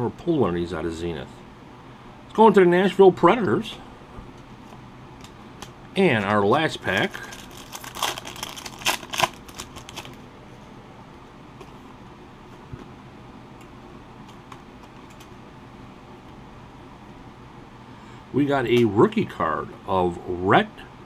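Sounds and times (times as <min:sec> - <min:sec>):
card pack wrapper crackling: 0:05.6 - 0:10.2.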